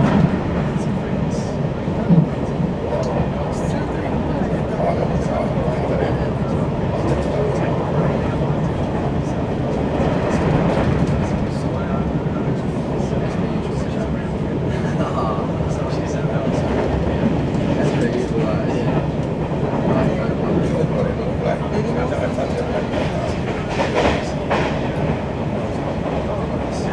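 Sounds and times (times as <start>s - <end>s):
train rumble and rail noise: 0.0s - 26.9s.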